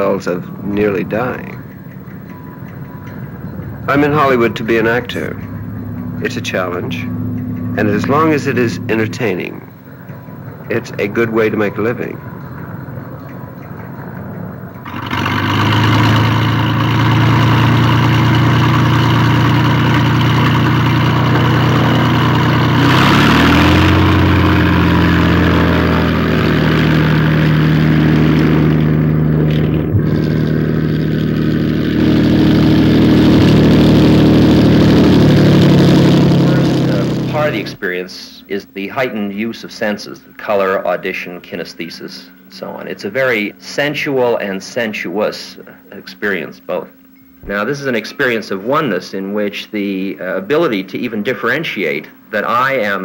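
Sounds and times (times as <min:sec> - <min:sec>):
light aircraft piston engine: 0:00.0 - 0:53.0.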